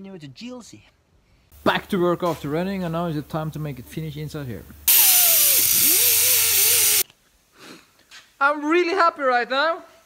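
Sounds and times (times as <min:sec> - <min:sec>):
grinder grinding metal: 0:04.9 - 0:07.0.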